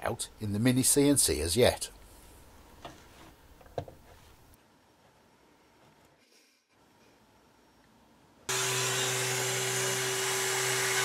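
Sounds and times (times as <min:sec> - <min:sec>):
background hiss: 0:00.0 - 0:08.5.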